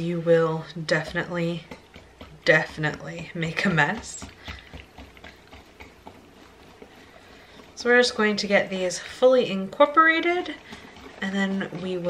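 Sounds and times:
whisk stirring batter: 0.0 - 12.0.

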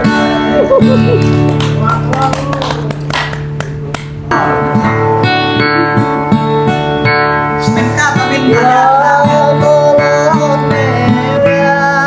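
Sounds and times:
acoustic guitar strumming: 0.0 - 12.0
hand claps: 1.1 - 4.4.

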